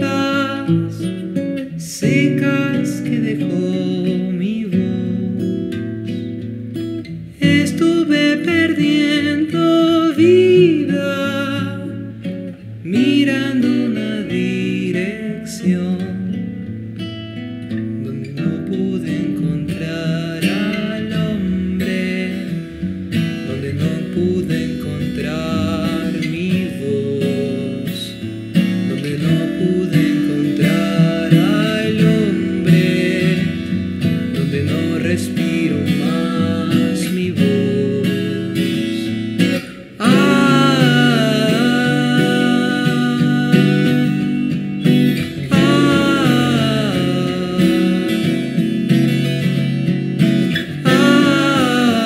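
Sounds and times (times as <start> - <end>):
acoustic guitar folk song: 0.0 - 52.0.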